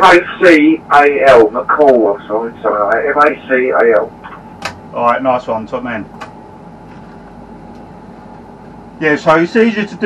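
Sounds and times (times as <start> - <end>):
machine hum: 0.0 - 10.0.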